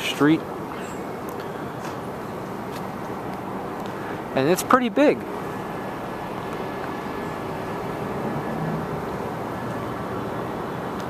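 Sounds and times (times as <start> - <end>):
city background hum: 0.0 - 11.0.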